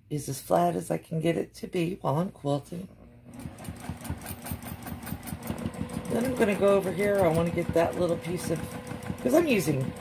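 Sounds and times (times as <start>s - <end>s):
sewing machine stitching: 3.2s - 10.0s.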